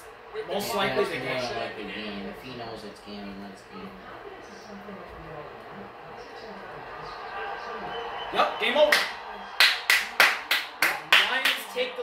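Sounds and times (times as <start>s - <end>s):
person clapping hands: 8.9s - 11.7s.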